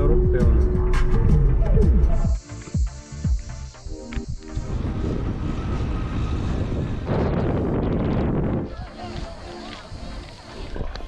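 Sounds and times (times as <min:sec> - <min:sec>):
road noise: 0:03.8 - 0:11.0
wind buffeting microphone: 0:04.3 - 0:11.0.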